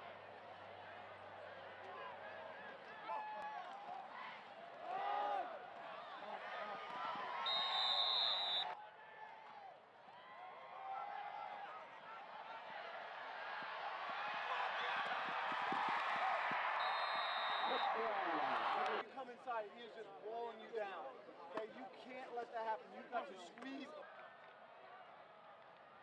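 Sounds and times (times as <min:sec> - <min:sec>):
stadium crowd shouting and cheering: 0:00.0 - 0:26.0
referee's whistle blast: 0:07.5 - 0:08.8, 0:16.8 - 0:18.0.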